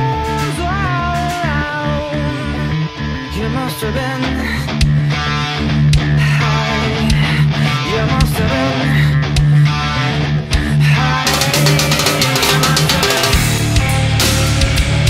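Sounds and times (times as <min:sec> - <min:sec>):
distorted bass and guitar: 0:00.0 - 0:15.0
drum kit with cymbals: 0:11.2 - 0:15.0.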